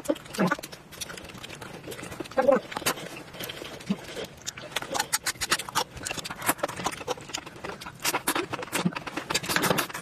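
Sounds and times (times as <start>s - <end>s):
wet chewing and smacking: 0.0s - 10.0s
mouth clicks: 4.2s - 10.0s.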